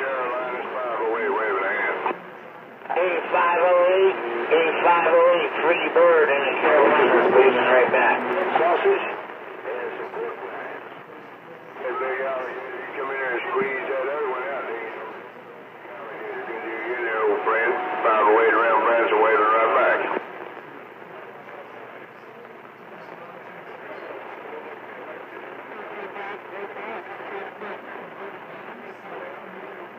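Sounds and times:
radio static: 0:00.0 - 0:29.9
garbled radio voice: 0:02.9 - 0:11.1, 0:11.8 - 0:20.2.

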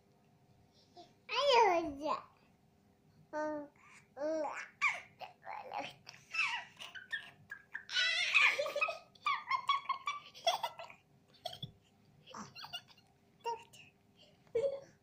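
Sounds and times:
baby laughing and babbling: 0:03.4 - 0:11.7, 0:12.3 - 0:13.8.

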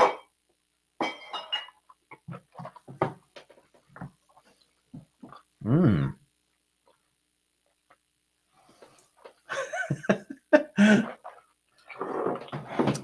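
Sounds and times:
man humming and murmuring: 0:05.6 - 0:06.2.

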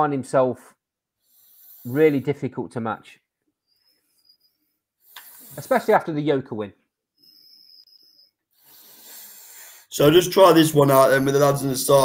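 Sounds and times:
person drawing a breath: 0:01.2 - 0:02.2, 0:03.7 - 0:05.7, 0:07.2 - 0:09.9
person speaking: 0:01.8 - 0:03.2, 0:05.4 - 0:06.8, 0:09.9 - 0:12.0.

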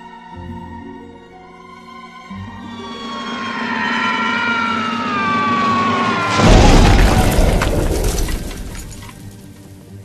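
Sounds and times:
falling whistle sound effect: 0:02.2 - 0:07.8.

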